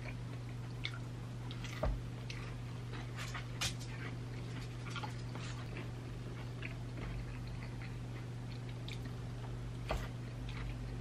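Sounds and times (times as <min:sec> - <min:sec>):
person chewing fried chicken: 0:00.0 - 0:09.5, 0:10.1 - 0:11.0
steady low hum: 0:00.0 - 0:11.0.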